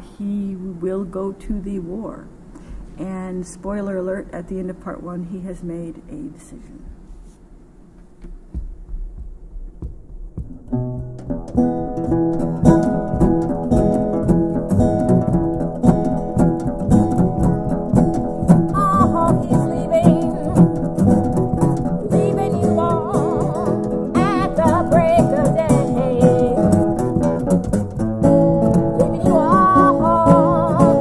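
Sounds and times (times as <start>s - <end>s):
acoustic guitars playing: 9.8s - 31.0s
woman singing: 18.5s - 20.8s, 22.0s - 27.2s, 28.6s - 31.0s.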